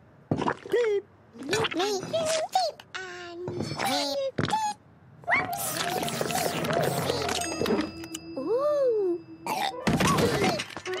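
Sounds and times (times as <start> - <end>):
squeaky cartoon vocalizing: 3.8 - 7.6
light music: 5.4 - 10.5.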